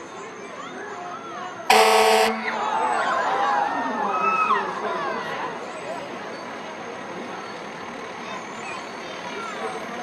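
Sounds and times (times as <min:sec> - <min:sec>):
crowd chatter: 0:00.0 - 0:10.0
fire engine horn blast: 0:01.7 - 0:02.6.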